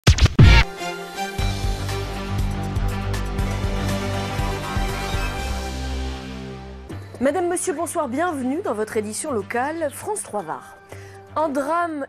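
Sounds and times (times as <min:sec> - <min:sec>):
record scratch sweeps: 0:00.0 - 0:00.7
news theme music: 0:00.0 - 0:11.2
low beat: 0:01.4 - 0:07.0.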